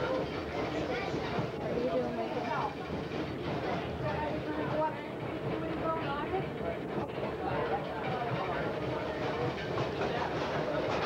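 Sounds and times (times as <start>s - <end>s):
faint voices: 0.0s - 11.0s
train running on track: 0.0s - 11.0s.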